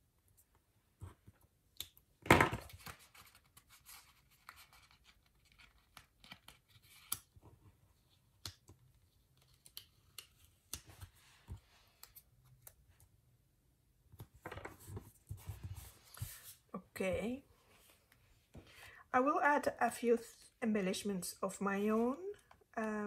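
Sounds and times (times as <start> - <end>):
paper rustling and scraping: 14.5 - 16.6.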